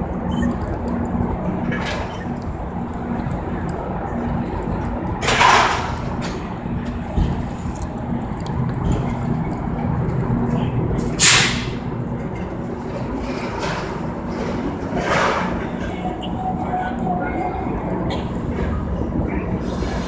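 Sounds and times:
train rumbling: 0:00.0 - 0:20.0.

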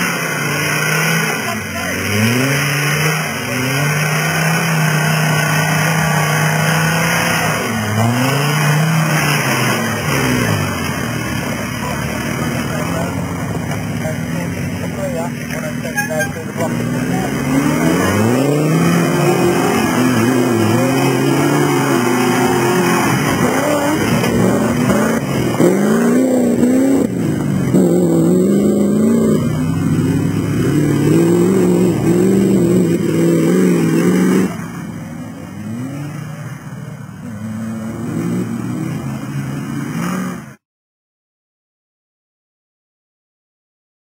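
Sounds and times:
off-road vehicle engine revving: 0:00.0 - 0:40.6.

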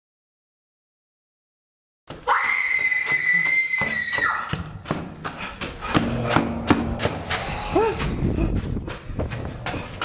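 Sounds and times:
high-pitched scream: 0:02.2 - 0:04.5.

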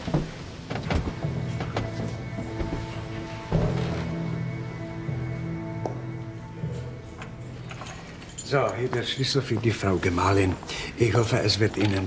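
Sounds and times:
light clinks: 0:06.7 - 0:09.4
man speaking: 0:08.4 - 0:12.0.

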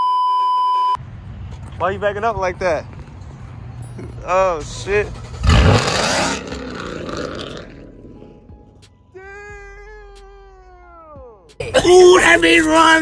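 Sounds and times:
car engine cold start: 0:04.7 - 0:07.8.

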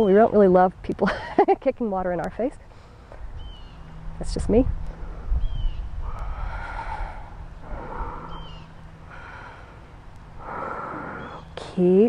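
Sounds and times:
woman breathing hard: 0:06.0 - 0:11.4.

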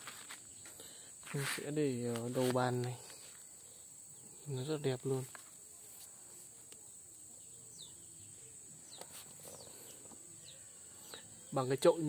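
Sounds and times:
steady high hiss: 0:00.0 - 0:12.0
bird chirping: 0:06.8 - 0:12.0.

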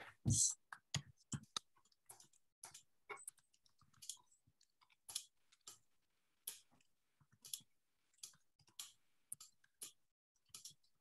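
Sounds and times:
faint irregular clicks: 0:00.7 - 0:11.0.

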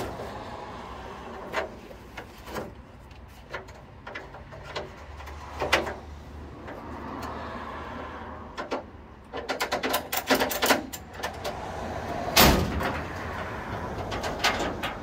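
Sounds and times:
metallic clicks and clanks: 0:01.4 - 0:07.3, 0:08.5 - 0:11.6, 0:12.3 - 0:15.0.

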